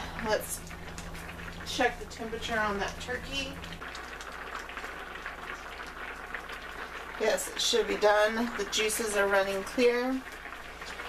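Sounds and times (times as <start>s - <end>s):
low steady hum: 0.0s - 11.0s
pan boiling hard: 0.0s - 11.0s.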